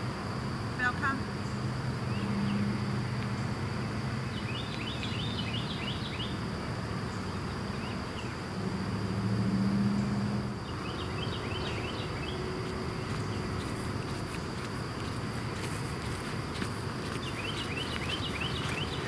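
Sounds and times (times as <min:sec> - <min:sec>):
insects droning: 0:00.0 - 0:19.0
low hum: 0:00.0 - 0:19.0
birds chirping: 0:00.8 - 0:08.5, 0:09.6 - 0:19.0.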